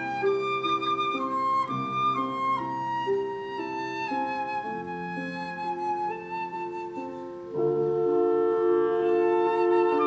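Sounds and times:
chamber ensemble accompaniment: 0.0s - 10.0s
flute playing held notes: 0.0s - 10.0s.

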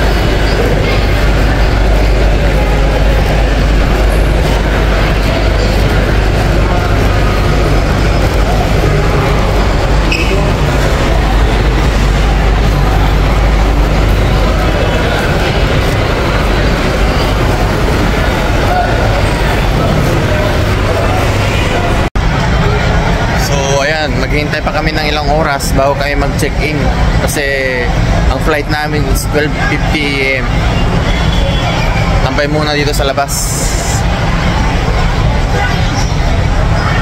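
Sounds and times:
background voices and chatter: 0.0s - 37.0s.

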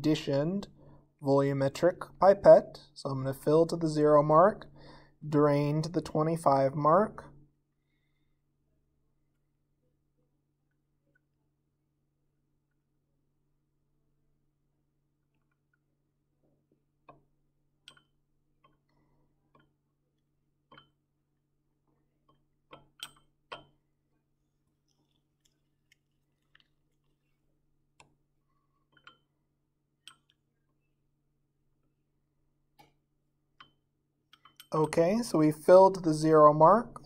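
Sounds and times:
glass pipette clicking in beaker: 22.3s - 23.7s.

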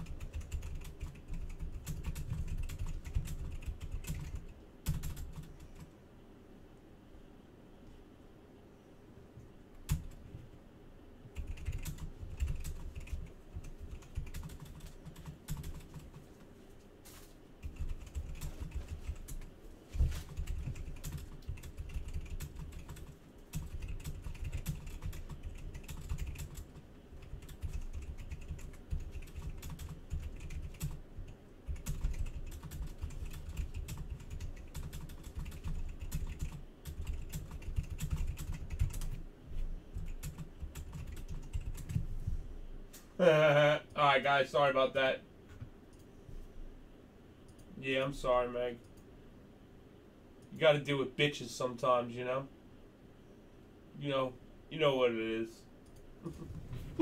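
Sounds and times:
computer keyboard typing: 0.0s - 5.9s, 9.8s - 10.3s, 11.3s - 16.5s, 17.6s - 39.2s, 39.9s - 42.0s.

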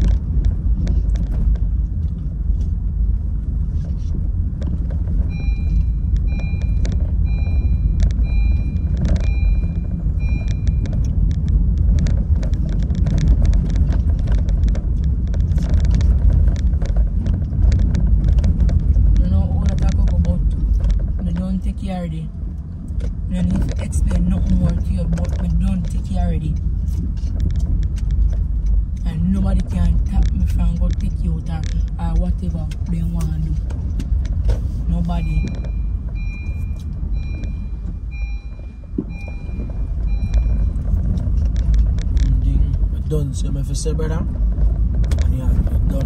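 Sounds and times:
car interior engine rumble: 0.0s - 46.0s
car warning chime beeps: 5.3s - 11.2s, 34.9s - 41.0s.

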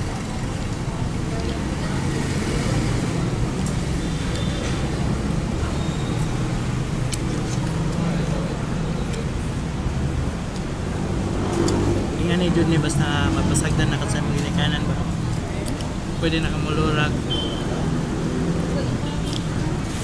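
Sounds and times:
murmur of diners' voices: 0.0s - 20.0s.

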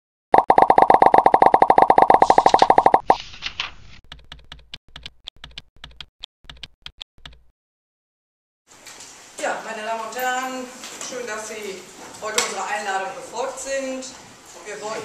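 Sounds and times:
fast buzzy clicks: 0.4s - 3.2s.

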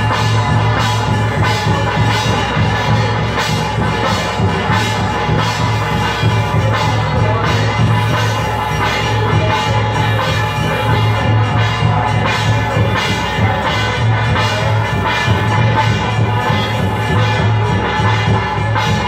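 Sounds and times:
drumming: 0.0s - 19.0s.

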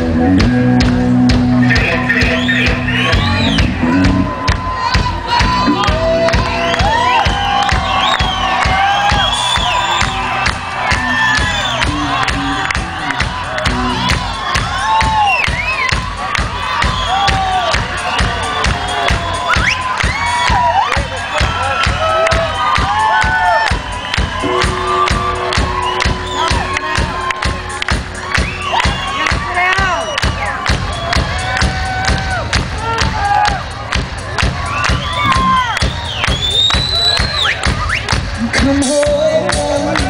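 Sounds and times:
crowd cheering and shouting: 0.0s - 40.0s
steady rock drum beat: 0.0s - 40.0s.

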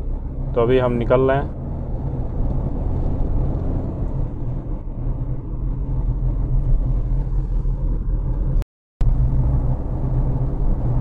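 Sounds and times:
car engine and road rumble: 0.0s - 11.0s.

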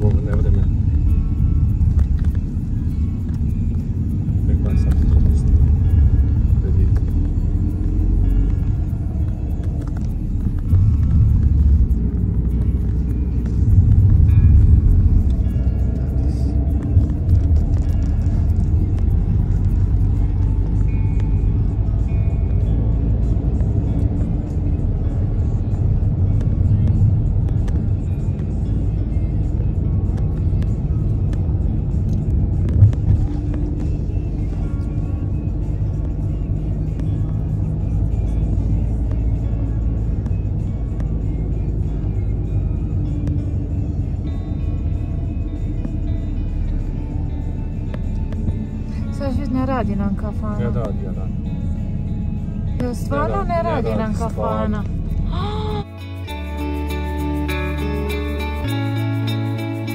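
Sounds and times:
car interior rumble: 0.0s - 59.9s
music playing: 0.0s - 59.9s.

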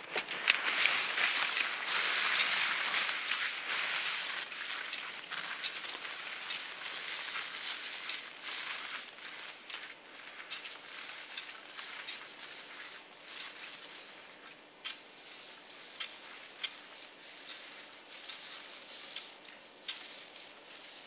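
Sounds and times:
sharp clicks of poles: 0.0s - 14.0s, 14.8s - 21.0s
crackly hiss of snow: 0.0s - 21.0s.

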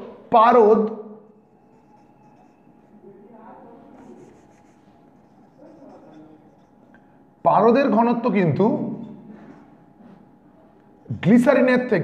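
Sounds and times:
marker writing on whiteboard: 1.2s - 3.1s, 3.8s - 7.0s.

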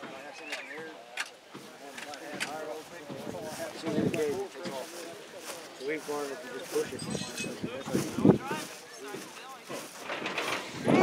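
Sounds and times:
people talking: 0.0s - 9.9s, 10.6s - 11.0s.

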